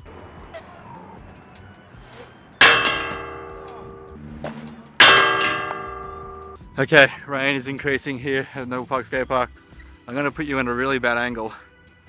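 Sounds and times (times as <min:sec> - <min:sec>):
loud metallic clangs ringing: 0:00.0 - 0:06.6.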